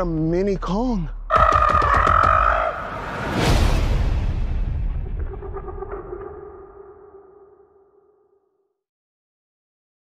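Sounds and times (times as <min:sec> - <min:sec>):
high held animal cry: 0:01.3 - 0:02.8.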